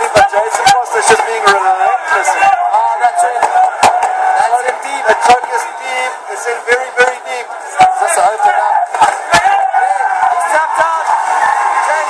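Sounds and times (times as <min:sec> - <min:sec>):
arena crowd cheering: 0:00.0 - 0:12.0
commentators shouting excitedly: 0:00.0 - 0:12.0.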